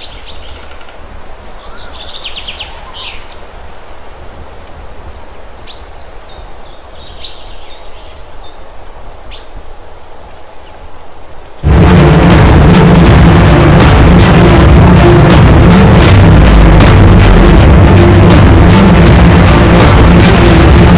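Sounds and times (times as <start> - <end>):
bird chirps: 0.0 - 3.5, 4.7 - 8.7
jeep engine rumbling: 11.6 - 20.9
loud music: 11.6 - 20.9.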